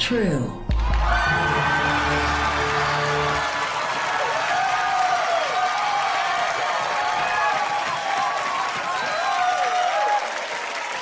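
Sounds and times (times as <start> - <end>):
audience applauding: 0.7 - 11.0
voices cheering: 0.7 - 11.0.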